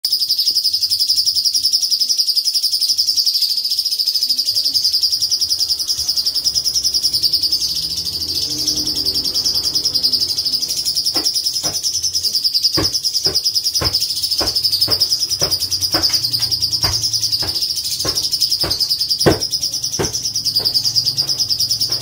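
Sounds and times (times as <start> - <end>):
bird singing fast rolling trill: 0.1 - 22.0.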